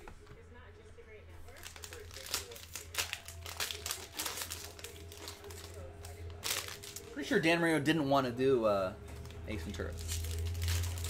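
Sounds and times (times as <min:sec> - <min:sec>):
plastic wrapper tearing and crinkling: 0:01.5 - 0:07.2, 0:09.2 - 0:11.0.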